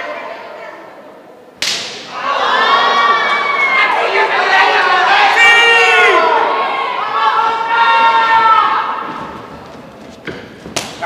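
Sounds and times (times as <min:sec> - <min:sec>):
crowd shouting long calls: 0:01.9 - 0:09.2.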